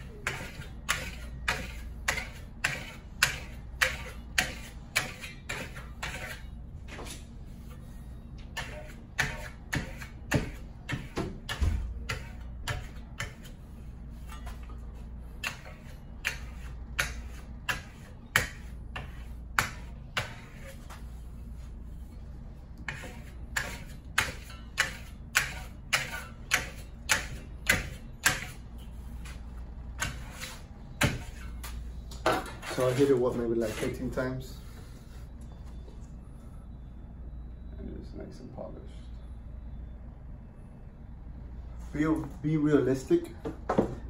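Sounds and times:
trowel scraping plaster: 0.0 - 6.5, 8.5 - 14.6, 15.4 - 21.0, 22.8 - 28.6, 30.0 - 31.6, 32.4 - 34.4.

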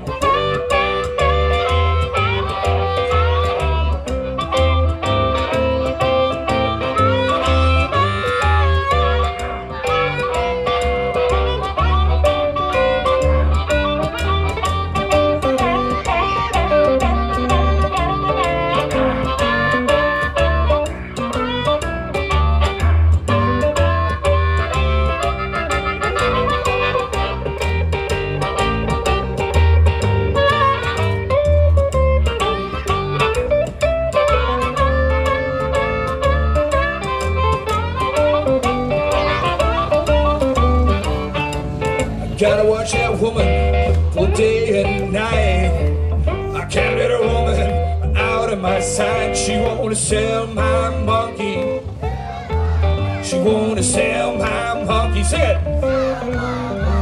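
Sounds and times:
harmonica: 0.0 - 49.6
electric guitar: 0.0 - 57.0
upright bass line: 0.0 - 57.0.

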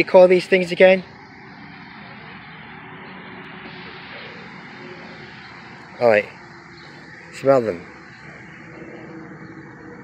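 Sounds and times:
outdoor background hum: 0.0 - 10.0.

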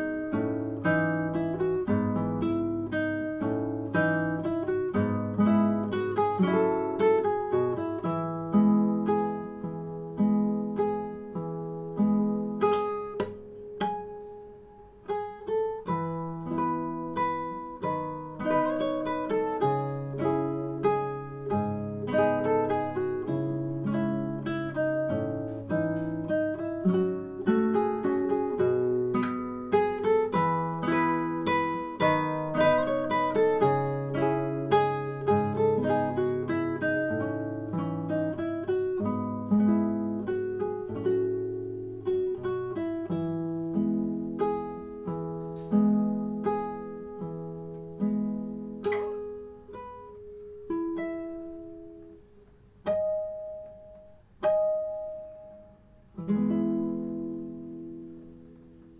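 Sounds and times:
classical guitar fingerpicked melody: 0.0 - 58.9.

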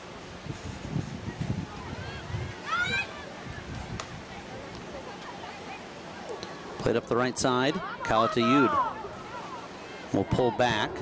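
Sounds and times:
steady background hiss: 0.0 - 11.0
distant players calling: 1.7 - 11.0.

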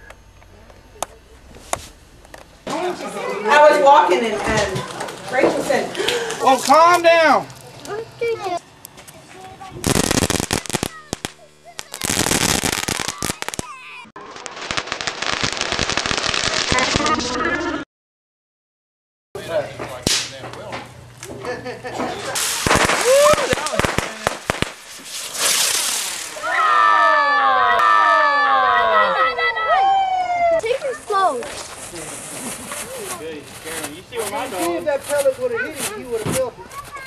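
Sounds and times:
fireworks crackling pops: 6.5 - 17.3, 20.0 - 20.6, 22.4 - 28.0, 30.6 - 37.0
fireworks hiss: 9.8 - 17.3, 22.4 - 27.0, 30.6 - 34.0
fireworks whistles gliding down: 9.8 - 17.8, 22.4 - 29.0.

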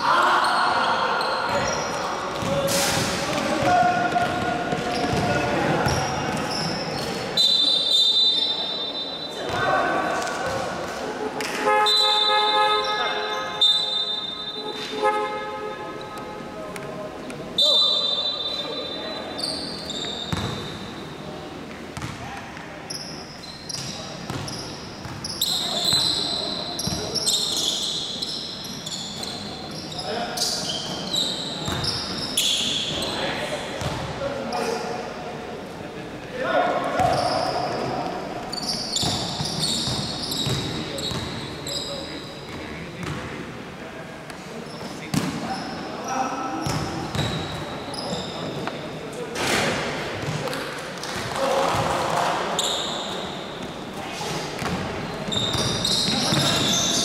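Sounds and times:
sneakers squeaking: 0.0 - 35.0, 36.8 - 43.3, 44.3 - 57.0
ball bouncing on hardwood court: 3.3 - 6.4, 22.0 - 22.3, 39.0 - 41.4, 54.6 - 56.9.

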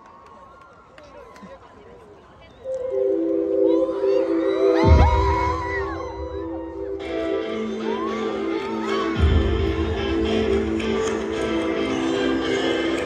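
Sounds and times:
crowd screaming and cheering: 2.5 - 13.0
live band playing: 2.8 - 13.0
heavy low hit: 4.8 - 7.1.

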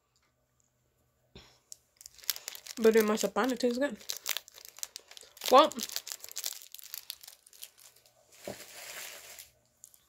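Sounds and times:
plastic wrapper crinkling: 1.7 - 10.0.

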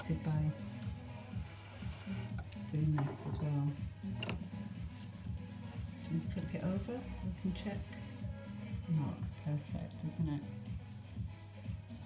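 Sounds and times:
quiet background music: 0.0 - 12.0
scissors snipping thread: 4.1 - 4.5.

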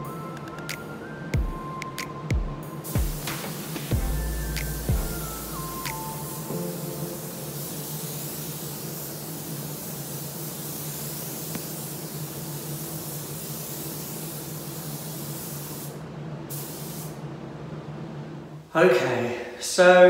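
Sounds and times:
spray gun hissing: 2.8 - 17.2
low hum: 3.9 - 6.4.

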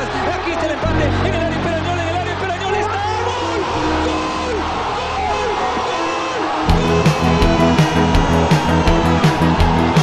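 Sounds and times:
background music: 0.0 - 10.0
commentator shouting: 0.0 - 10.0
song with heavy drum beat: 6.7 - 10.0.

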